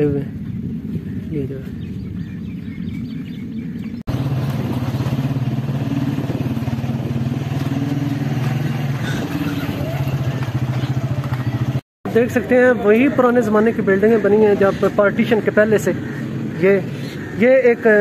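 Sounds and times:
small motorcycle engine running: 0:04.1 - 0:11.8.

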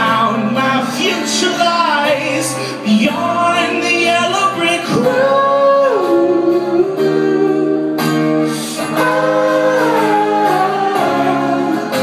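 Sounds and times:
man singing wordless high notes: 0:00.0 - 0:12.0.

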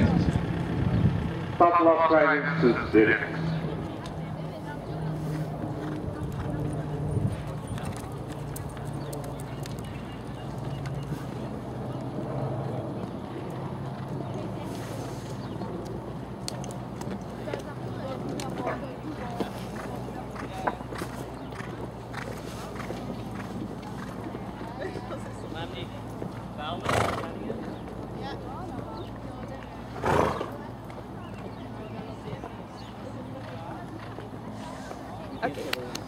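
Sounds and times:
horse hoofbeats on sand: 0:05.0 - 0:35.4.

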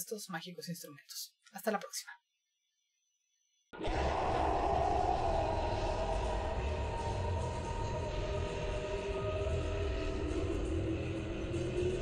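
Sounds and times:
low rumble: 0:03.8 - 0:12.0.

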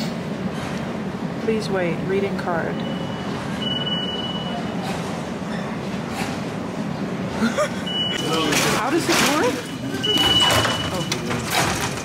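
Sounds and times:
card reader electronic beep: 0:02.7 - 0:04.8, 0:07.8 - 0:11.3.

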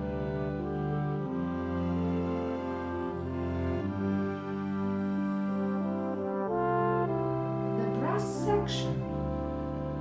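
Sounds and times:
held brass chords: 0:00.0 - 0:10.0.

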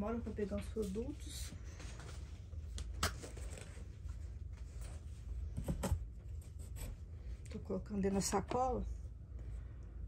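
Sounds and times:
low steady rumble: 0:00.0 - 0:10.0.

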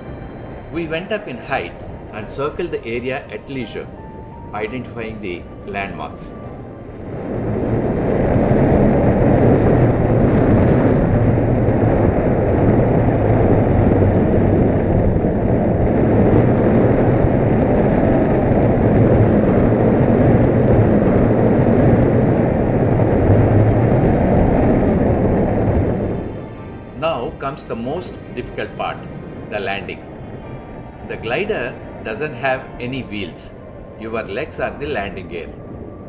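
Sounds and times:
wind rushing over microphone: 0:00.0 - 0:36.0.

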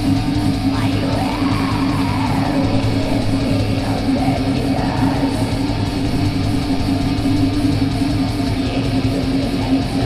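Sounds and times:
distorted electric guitars: 0:00.0 - 0:10.0
rapid dense drumming: 0:00.0 - 0:10.0.

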